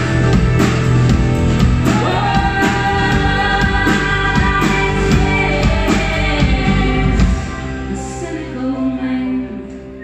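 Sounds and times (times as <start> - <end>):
live pop-rock band: 0.0 - 10.0
woman singing: 1.8 - 10.0.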